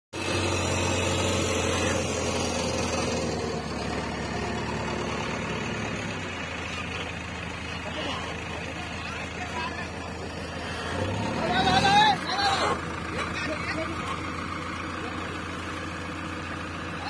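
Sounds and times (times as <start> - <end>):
diesel engine running: 0.1 - 17.0.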